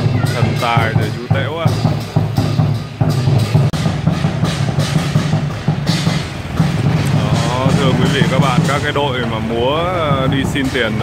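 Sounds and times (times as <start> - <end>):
cymbals: 0.0 - 11.0
drum beating rhythm: 0.0 - 11.0.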